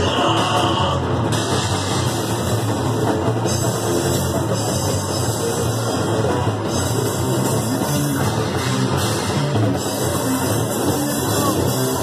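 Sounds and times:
bass guitar: 0.0 - 12.0
distorted electric guitar: 0.0 - 12.0
drum kit: 0.0 - 12.0.

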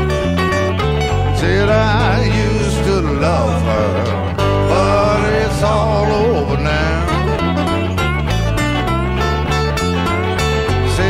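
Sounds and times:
bass line: 0.0 - 11.0
lead guitar bending notes: 0.0 - 11.0.

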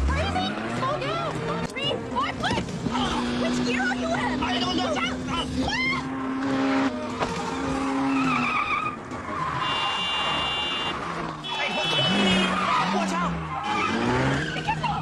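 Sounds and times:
car engine revving: 0.0 - 15.0
tyres squealing: 0.2 - 15.0
frantic shouting: 11.5 - 15.0.

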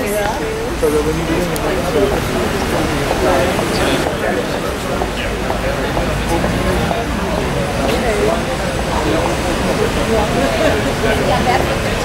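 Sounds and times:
city street noise: 0.0 - 12.0
people talking indistinctly: 0.0 - 12.0.

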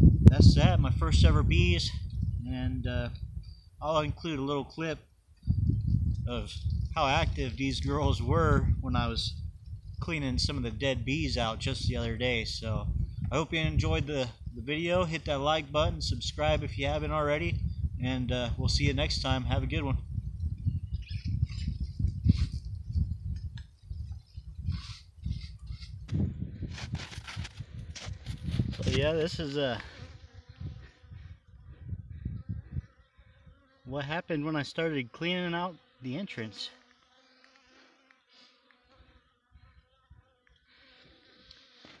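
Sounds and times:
wind rumbling on microphone: 0.0 - 4.8, 5.4 - 33.6
honeybees buzzing: 27.2 - 42.0.

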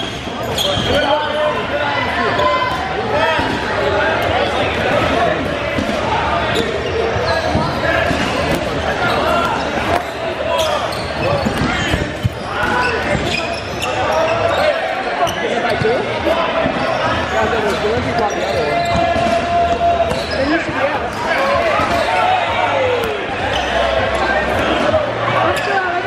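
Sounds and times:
players shouting and chattering: 0.0 - 26.0.

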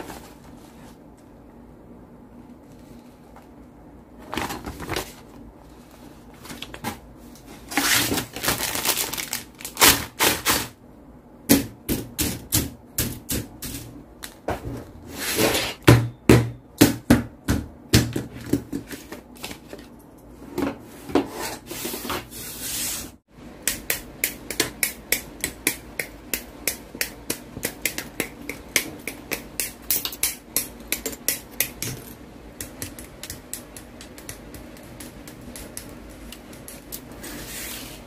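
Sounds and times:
paper rustle: 4.2 - 7.0.

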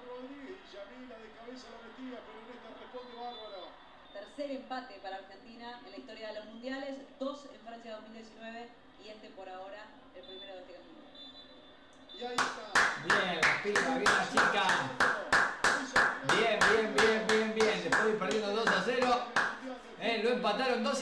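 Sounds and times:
person clapping hands: 12.4 - 19.6.

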